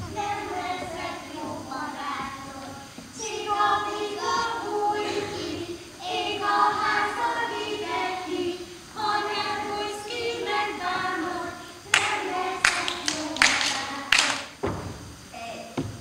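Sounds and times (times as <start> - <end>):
children singing: 0.0 - 14.6
loud sharp claps: 11.9 - 14.7.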